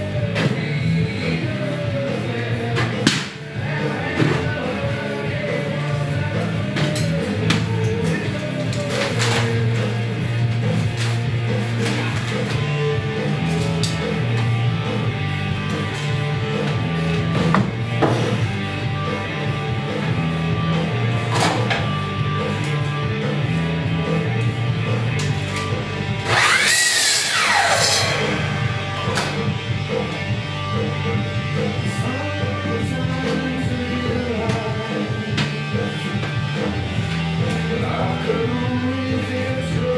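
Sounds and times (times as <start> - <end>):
rock music with guitar and drums: 0.0 - 39.9
miter saw cutting: 26.2 - 29.2.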